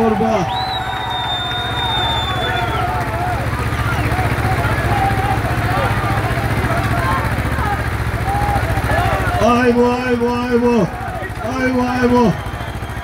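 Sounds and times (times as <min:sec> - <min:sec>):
crowd shouting: 0:00.0 - 0:13.0
tractor diesel engines pulling hard: 0:00.0 - 0:13.0
high whistle tone: 0:00.5 - 0:02.8.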